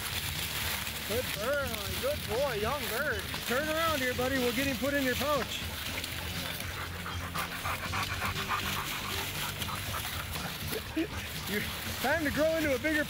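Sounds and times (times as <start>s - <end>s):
dog panting quickly: 5.9s - 12.0s.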